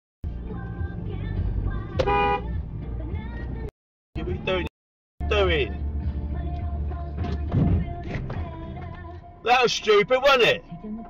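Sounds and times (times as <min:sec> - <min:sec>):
car horn honk: 0:02.0 - 0:02.5.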